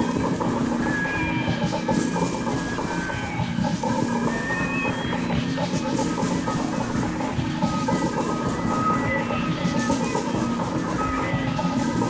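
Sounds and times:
crackling noise and drone: 0.0 - 12.0.

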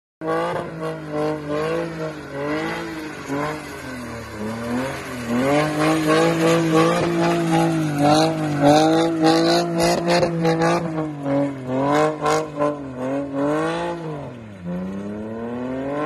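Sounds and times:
car engine revving: 0.2 - 16.0.

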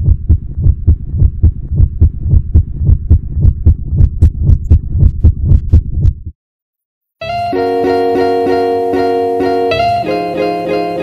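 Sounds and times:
rhythmic low thudding with clicks: 0.0 - 6.4.

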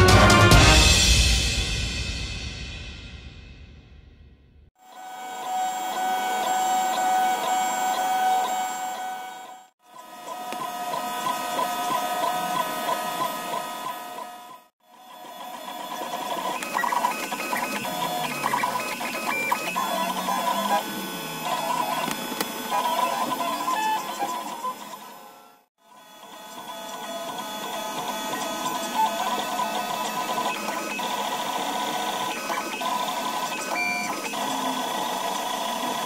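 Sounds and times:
stepper motors whining: 4.8 - 36.0.

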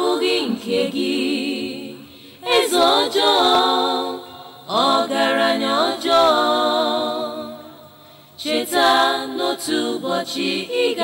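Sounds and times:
unaccompanied singing voices: 0.0 - 11.0.

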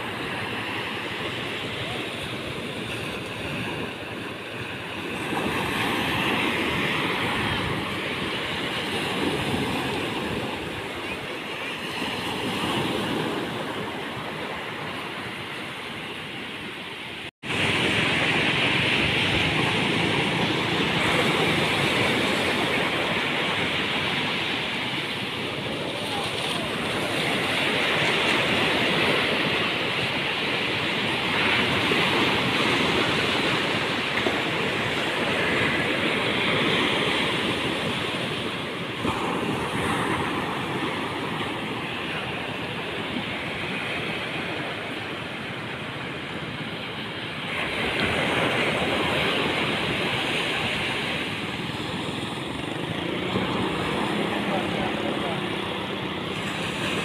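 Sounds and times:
surf breaking on beach: 0.0 - 57.0.

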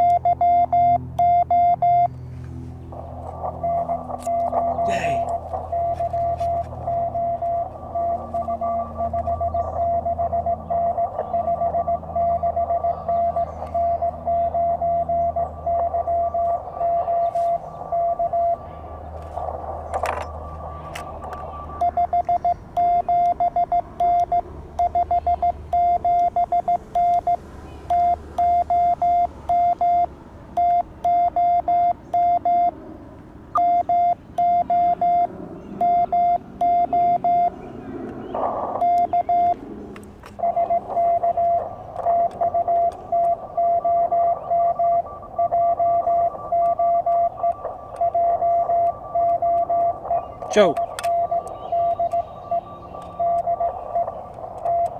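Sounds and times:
morse code tones: 0.0 - 2.2, 2.9 - 32.8, 33.5 - 37.6, 38.4 - 39.6, 40.3 - 54.9.

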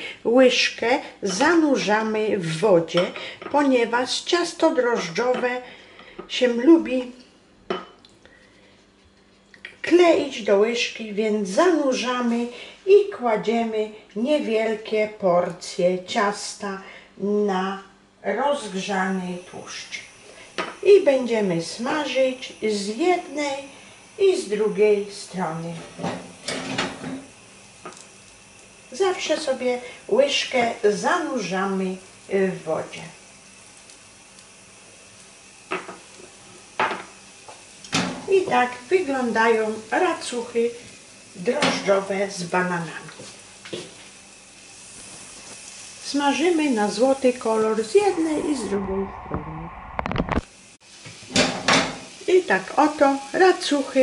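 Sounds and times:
batter sizzling in a pan: 18.3 - 48.2, 50.5 - 54.0.

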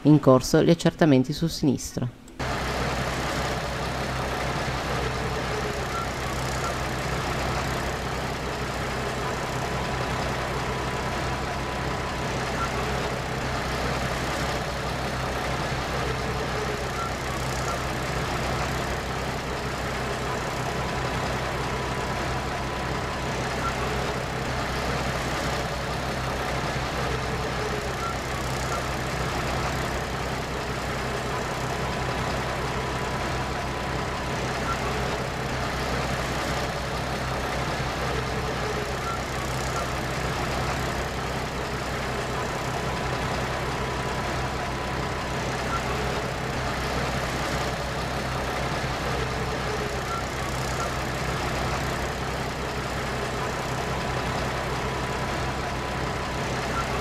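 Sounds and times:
vehicle engine idling: 2.3 - 57.0.

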